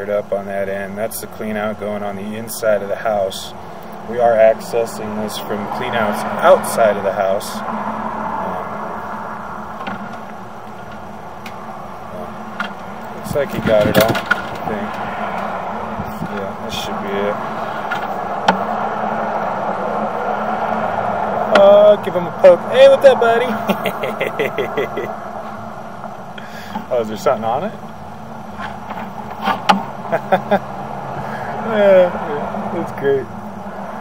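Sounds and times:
machine humming: 2.0s - 34.0s
person laughing: 23.4s - 25.2s, 30.1s - 30.7s.

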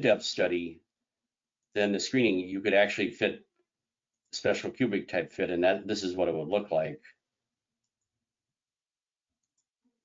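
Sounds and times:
computer mouse clicks: 9.4s - 9.8s.

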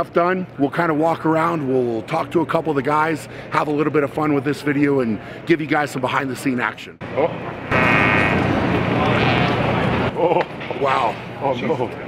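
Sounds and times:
man farting: 7.7s - 8.5s, 9.1s - 9.6s.

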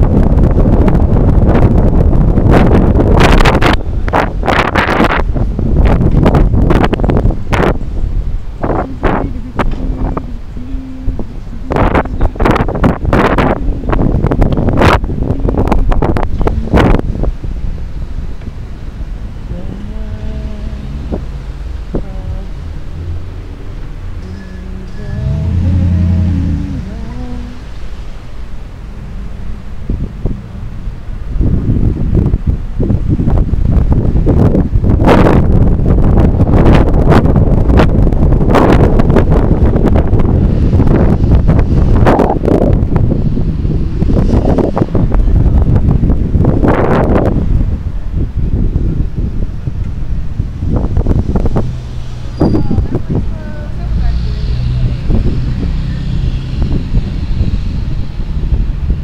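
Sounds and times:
street traffic noise: 0.0s - 59.0s
wind buffeting microphone: 0.0s - 59.0s
short rising and falling tone: 19.5s - 30.8s.

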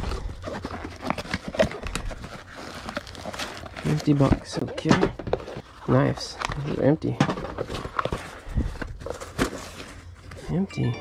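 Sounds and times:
fabric bag rustling: 0.0s - 4.6s.

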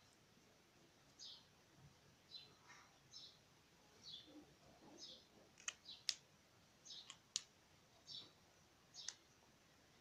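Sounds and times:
small bird chirping: 1.1s - 1.5s, 2.2s - 3.4s, 4.0s - 6.2s, 6.8s - 9.4s
faint sharp clicks: 5.6s - 6.2s, 7.0s - 7.5s, 9.0s - 9.3s.

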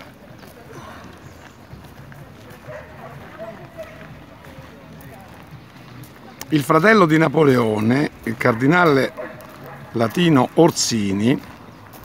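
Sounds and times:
footsteps crunching on gravel: 0.0s - 12.0s
indistinct chatter: 0.0s - 12.0s.

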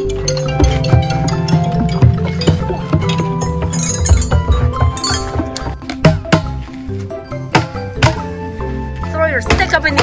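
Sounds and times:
metal chime tubes ringing: 0.0s - 5.9s
pipe drums slapped by hand: 4.3s - 6.6s, 7.5s - 8.4s.

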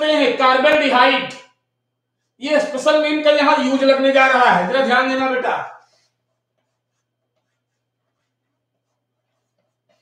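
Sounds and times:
chalk scratching on board: 2.0s - 2.6s, 5.6s - 10.0s.

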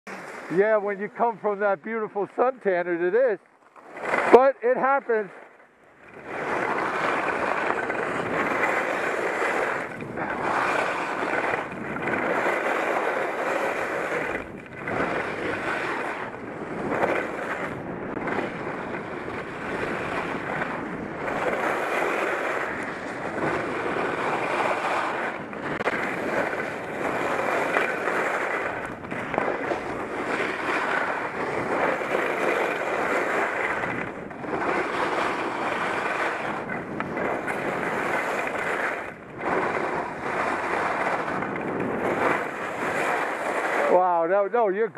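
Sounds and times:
skis scraping on hard snow: 0.1s - 44.9s
wind rushing over microphone: 6.0s - 44.9s.

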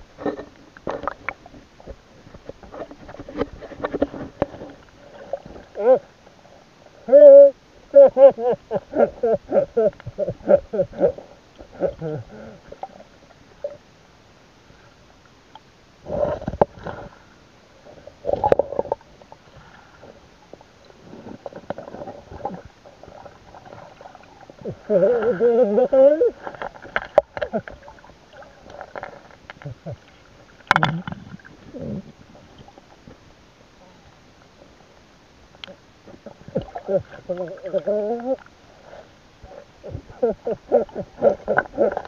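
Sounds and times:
river water gurgling: 15.9s - 42.0s.

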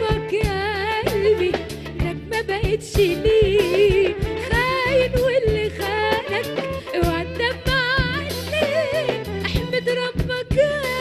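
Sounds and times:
band playing: 0.0s - 11.0s
woman singing: 0.0s - 11.0s.

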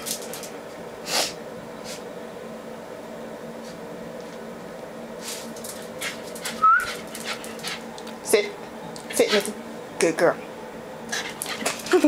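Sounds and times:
dog whining: 6.5s - 7.1s.

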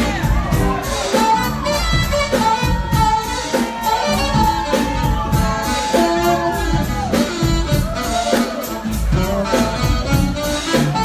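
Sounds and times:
drum kit: 0.0s - 11.0s
electric bass guitar: 0.0s - 11.0s
saxophone melody: 0.0s - 11.0s.

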